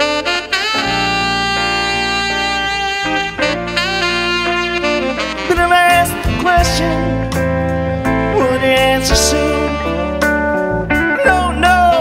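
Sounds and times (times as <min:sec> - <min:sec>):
lead guitar solo: 0:00.0 - 0:05.5
live rock band playing: 0:00.0 - 0:12.0.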